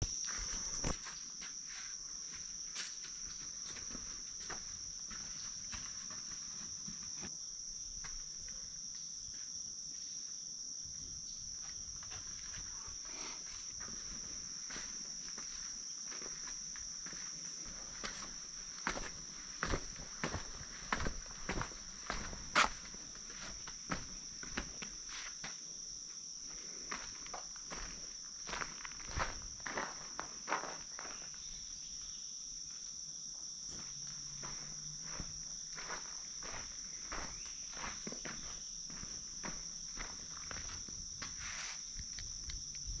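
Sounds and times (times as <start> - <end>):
high-pitched insect chorus: 0.0 - 43.0
footsteps crunching on stone stairs: 0.1 - 7.4, 13.8 - 25.6, 26.9 - 31.4, 33.6 - 42.7.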